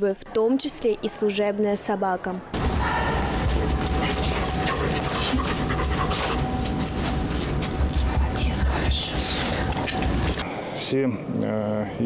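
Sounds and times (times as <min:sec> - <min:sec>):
dog panting: 0:03.3 - 0:10.4.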